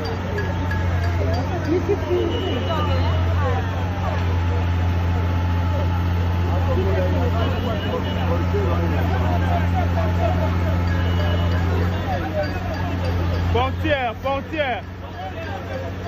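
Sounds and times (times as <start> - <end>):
crowd chattering: 0.0 - 16.0
diesel engine droning: 0.0 - 16.0.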